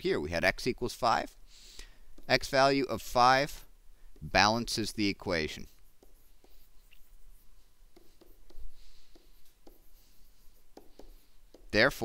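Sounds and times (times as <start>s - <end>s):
stylus tapping and scratching screen: 2.1s - 12.0s.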